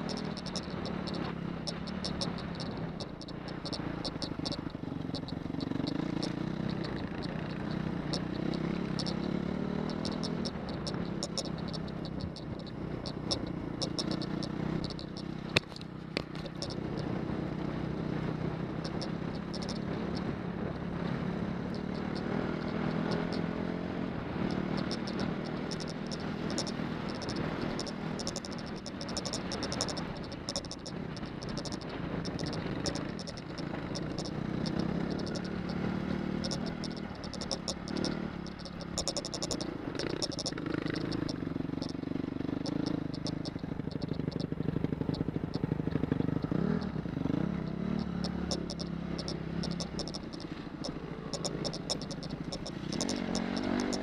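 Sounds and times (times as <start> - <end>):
off-road motorcycle engine: 0.0 - 54.0.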